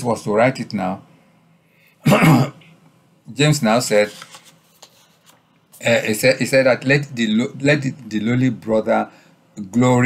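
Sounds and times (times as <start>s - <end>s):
man coughing: 2.0s - 2.7s.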